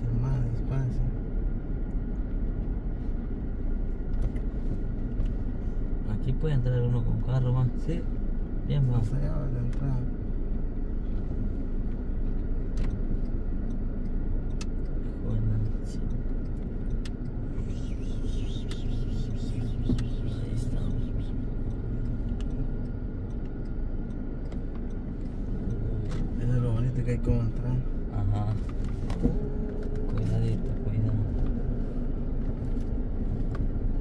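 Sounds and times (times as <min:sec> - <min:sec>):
car engine and road rumble: 0:00.0 - 0:34.0.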